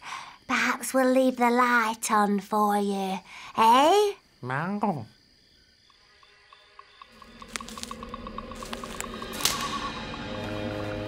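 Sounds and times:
soft cartoon music: 0:07.1 - 0:11.0.

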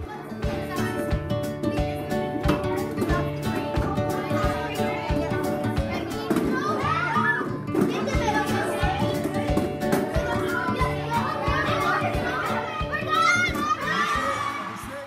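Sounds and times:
background music with beat: 0:00.0 - 0:15.0
girls chattering excitedly: 0:00.0 - 0:15.0
girls shrieking: 0:13.1 - 0:14.7.

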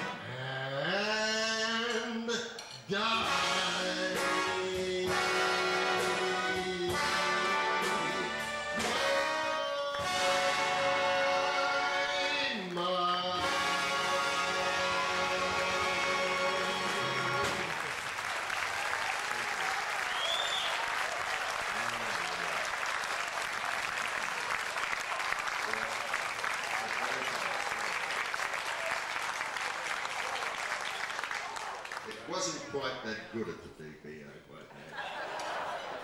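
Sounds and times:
big band holding final chord: 0:03.2 - 0:12.3
audience applause: 0:15.5 - 0:32.6.

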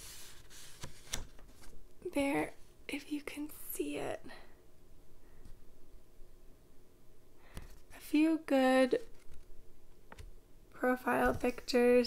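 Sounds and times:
woman speaking softly: 0:02.0 - 0:04.5, 0:08.0 - 0:09.0, 0:10.8 - 0:12.0.

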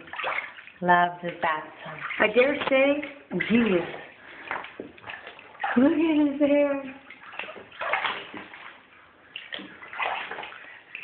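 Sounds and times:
bathwater splashing: 0:00.0 - 0:11.0.

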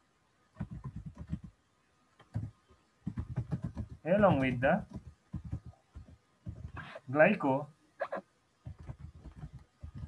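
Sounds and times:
computer keyboard typing: 0:00.6 - 0:01.5, 0:02.2 - 0:06.9, 0:08.7 - 0:10.0.

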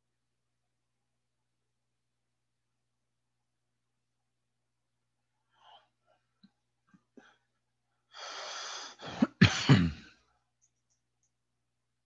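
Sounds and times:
person coughing: 0:09.0 - 0:10.2.

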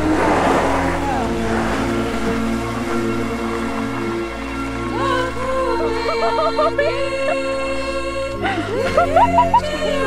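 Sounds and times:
car driving past on dirt: 0:00.0 - 0:04.1
music with sustained tones: 0:00.0 - 0:10.0.

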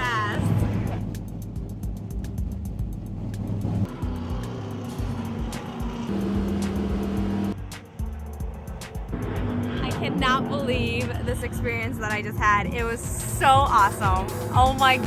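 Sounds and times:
background music: 0:00.0 - 0:15.0
race car engines: 0:00.0 - 0:15.0.

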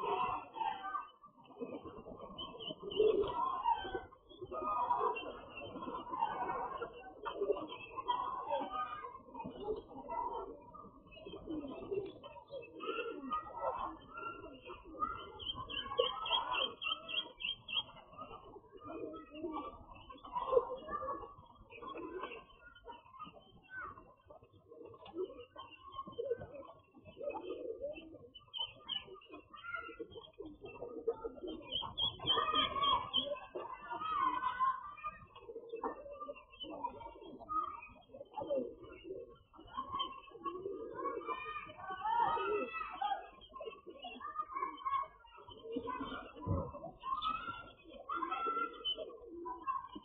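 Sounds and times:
chicks peeping: 0:00.0 - 0:42.3
pigeons cooing: 0:00.0 - 0:50.0
small poultry chirping: 0:13.3 - 0:18.5, 0:19.2 - 0:45.1.

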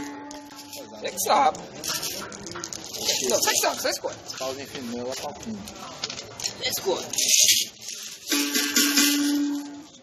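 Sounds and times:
berimbau wire struck and ringing: 0:00.0 - 0:00.9.

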